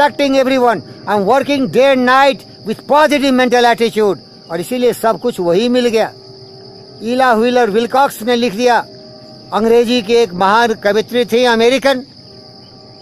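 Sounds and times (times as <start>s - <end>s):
man speaking: 0.0s - 6.2s, 7.0s - 8.9s, 9.5s - 12.1s
high-pitched insect drone: 0.0s - 13.0s.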